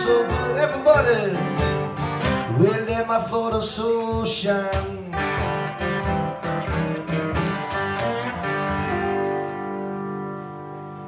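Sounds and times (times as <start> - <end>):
man singing: 0.0 - 1.8, 2.4 - 5.6, 6.4 - 7.6
acoustic guitars playing blues: 0.0 - 11.0.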